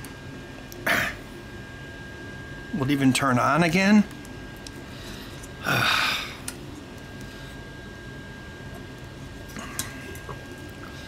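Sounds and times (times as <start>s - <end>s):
faint high whine: 0.0s - 11.0s
low background hum: 0.0s - 11.0s.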